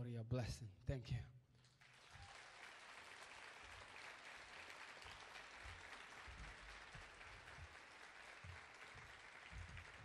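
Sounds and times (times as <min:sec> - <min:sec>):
faint audience applause: 0:01.6 - 0:10.0.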